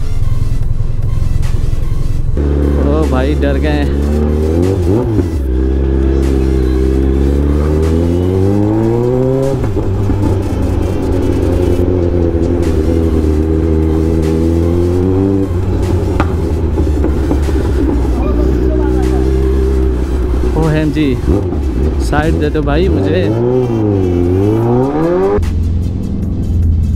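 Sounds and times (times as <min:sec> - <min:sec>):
motorcycle engine and loud exhaust: 0:00.0 - 0:26.9.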